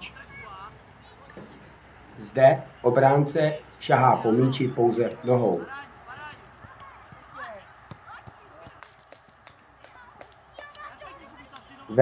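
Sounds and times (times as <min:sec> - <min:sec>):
distant children calling out: 0:00.0 - 0:02.9, 0:03.5 - 0:12.0
running feet: 0:05.5 - 0:12.0
ball being kicked: 0:06.6 - 0:08.8.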